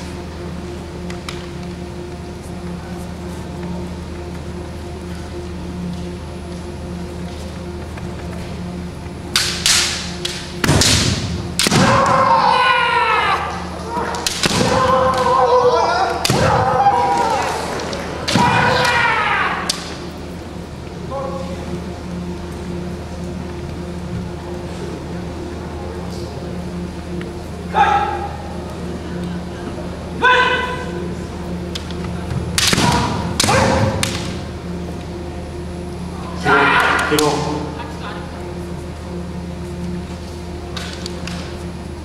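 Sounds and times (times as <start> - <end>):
bamboo sword strikes cracking: 9.3 - 12.1, 14.2 - 14.8, 16.2 - 16.5, 32.5 - 34.4
person shouting: 11.9 - 14.1, 18.4 - 19.7, 30.2 - 31.0, 36.3 - 37.2.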